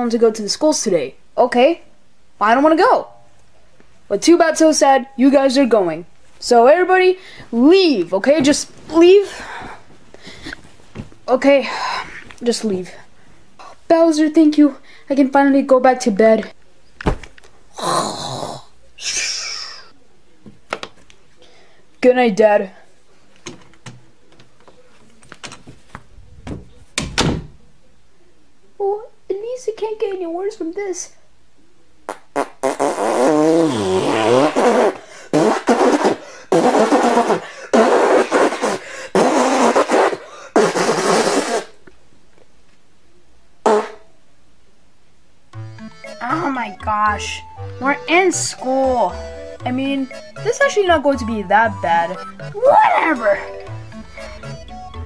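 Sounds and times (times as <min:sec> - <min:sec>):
person breathing loudly: 0:09.3 - 0:10.6, 0:35.0 - 0:35.4, 0:36.2 - 0:36.5, 0:37.4 - 0:37.8, 0:38.7 - 0:39.2, 0:40.2 - 0:40.6
faint voiced groan: 0:17.7 - 0:18.8
fart noises: 0:32.1 - 0:41.8, 0:43.6 - 0:44.1.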